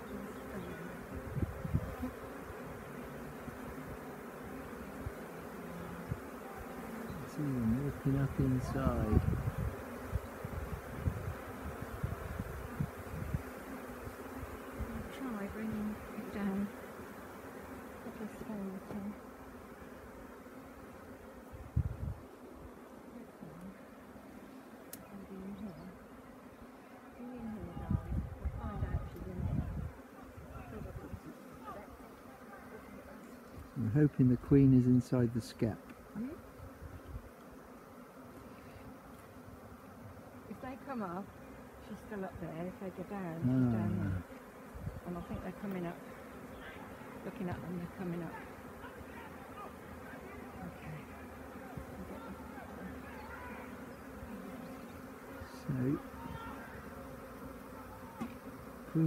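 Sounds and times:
bee swarm humming: 0.0 - 59.0
single bees flying past: 0.0 - 59.0.

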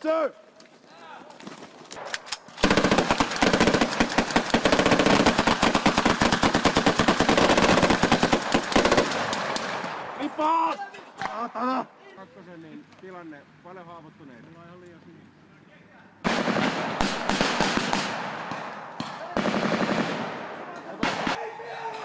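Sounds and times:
rifles firing volleys: 2.0 - 10.5, 16.2 - 21.5
people shouting: 10.2 - 12.2, 21.2 - 22.0.

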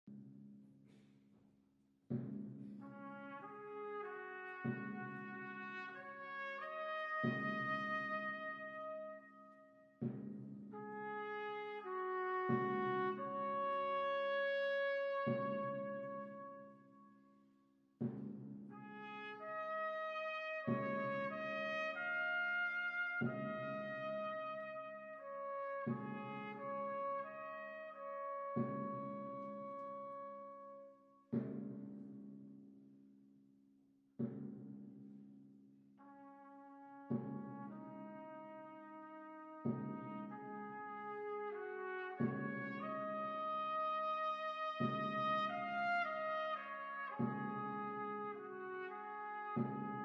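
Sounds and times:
trumpet ensemble playing solemn chords: 2.9 - 9.3, 10.8 - 16.7, 18.8 - 30.6, 36.1 - 50.0.

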